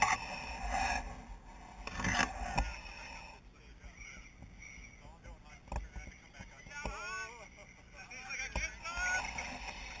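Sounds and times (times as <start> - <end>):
small electric motor whine: 0.0 - 3.4, 8.9 - 10.0.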